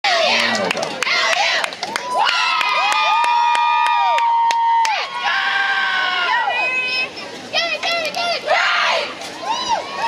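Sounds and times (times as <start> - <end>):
crowd cheering: 0.0 - 10.0
scattered clapping: 0.1 - 5.0.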